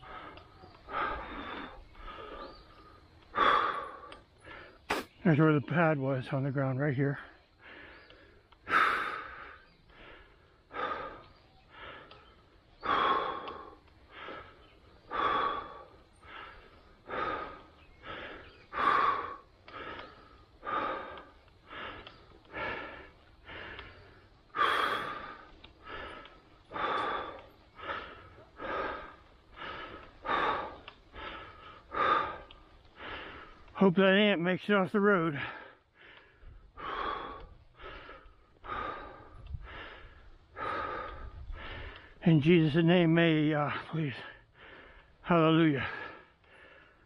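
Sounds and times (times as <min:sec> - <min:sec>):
person breathing heavily: 0:00.0 - 0:05.2, 0:07.1 - 0:33.9, 0:35.1 - 0:42.8, 0:43.4 - 0:47.0.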